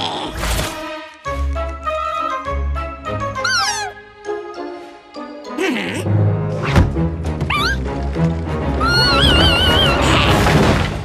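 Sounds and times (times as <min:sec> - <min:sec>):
cartoon background music: 0:00.0 - 0:11.0
creature's warbling tone: 0:05.6 - 0:06.1.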